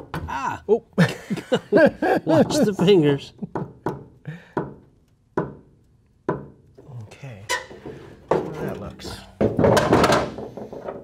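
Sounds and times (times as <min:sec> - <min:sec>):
tool knocking on wooden blocks: 0:03.4 - 0:06.6.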